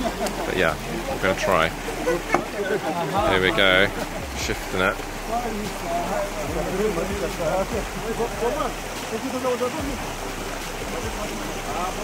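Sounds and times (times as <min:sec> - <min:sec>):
men talking and calling: 0:00.0 - 0:12.0
shallow stream running: 0:00.0 - 0:12.0.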